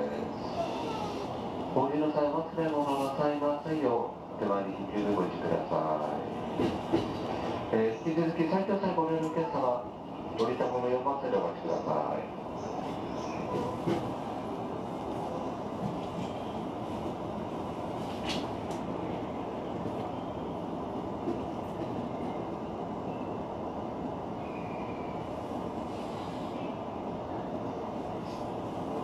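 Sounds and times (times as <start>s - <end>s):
train rumbling: 0.0s - 29.0s.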